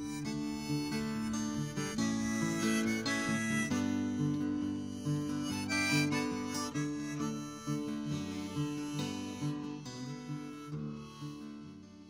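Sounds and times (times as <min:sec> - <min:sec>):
acoustic guitar: 0:00.0 - 0:12.0
harmonica melody: 0:00.0 - 0:12.0.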